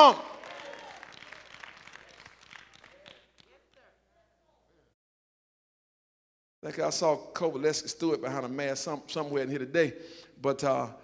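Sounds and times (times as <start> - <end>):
people clapping: 0.0 - 4.0.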